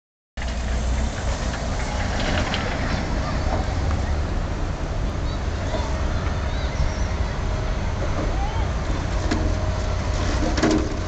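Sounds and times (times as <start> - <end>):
distant excavator diesel engine: 0.4 - 11.0.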